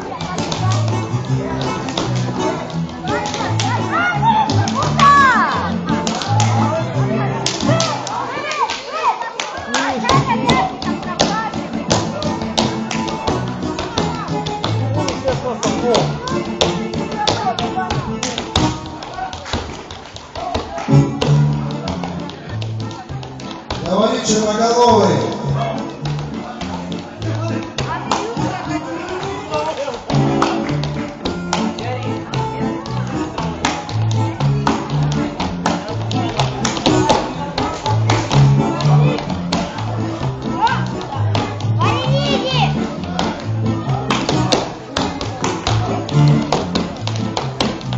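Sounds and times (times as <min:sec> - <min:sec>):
live keyboard music: 0:00.0 - 0:08.3, 0:10.0 - 0:19.4, 0:20.7 - 0:47.9.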